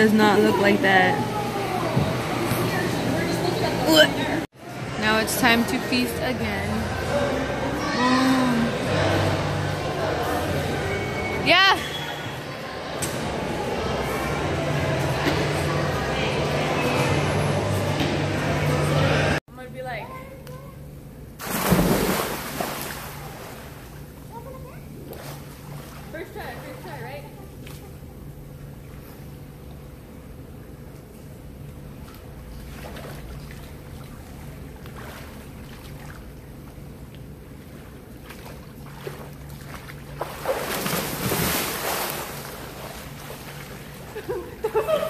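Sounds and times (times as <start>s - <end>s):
steady low hum: 12.5s - 45.0s
splash into swimming pool: 21.4s - 23.7s, 40.2s - 43.0s
water churning: 21.4s - 24.5s, 37.6s - 44.6s.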